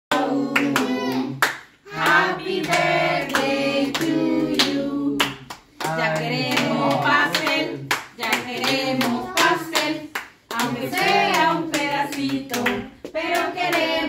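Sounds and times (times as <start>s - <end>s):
small group singing together: 0.1s - 14.0s
hands clapping: 0.5s - 14.0s.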